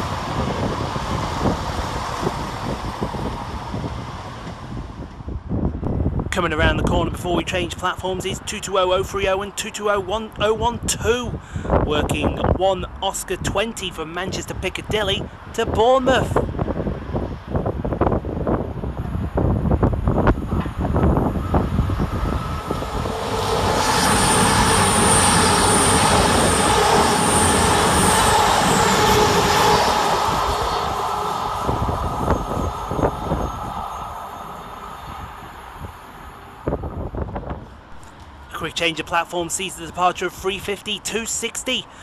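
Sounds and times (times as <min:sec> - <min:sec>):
wind buffeting microphone: 0:00.0 - 0:38.6
train engine and wheel noise: 0:00.0 - 0:42.0.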